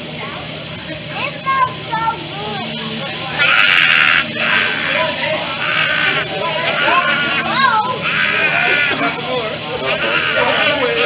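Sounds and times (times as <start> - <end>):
griddle sizzling: 0.0 - 11.0
people's voices: 0.0 - 11.0.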